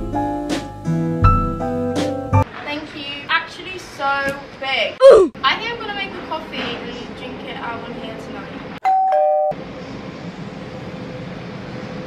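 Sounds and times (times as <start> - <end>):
two-note doorbell chime: 8.8 - 9.6.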